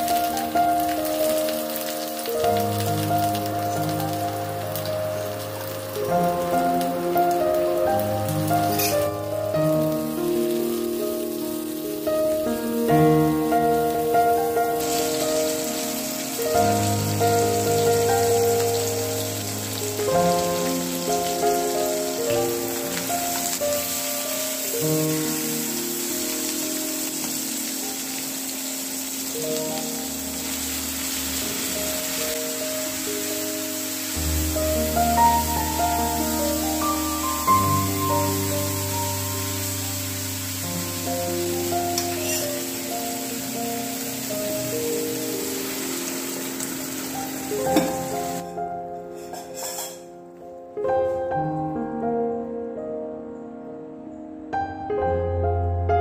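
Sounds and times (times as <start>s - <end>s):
vegetables sizzling in hot oil: 0.0s - 50.1s
background music of held notes: 0.0s - 56.0s.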